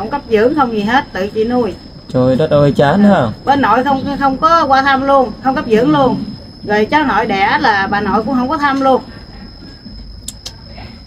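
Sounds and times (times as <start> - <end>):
faint high whine: 0.0 - 11.0
low steady rumble: 0.0 - 11.0.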